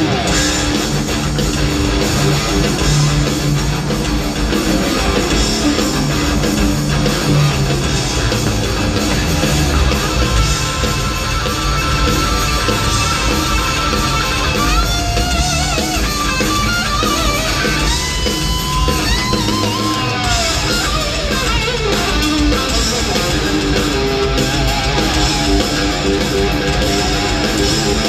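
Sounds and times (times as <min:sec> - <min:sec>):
electric guitar solo: 0:00.0 - 0:28.0
live rock band playing: 0:00.0 - 0:28.0.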